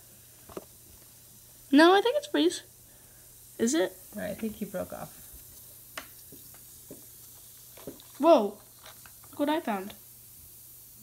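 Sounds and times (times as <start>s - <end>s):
faint fizzing in water: 3.5s - 10.0s.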